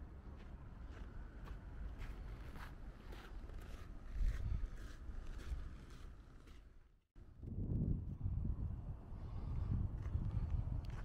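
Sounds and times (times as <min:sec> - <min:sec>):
footsteps crunching on snow: 0:00.4 - 0:06.7
wind buffeting microphone: 0:07.2 - 0:11.0.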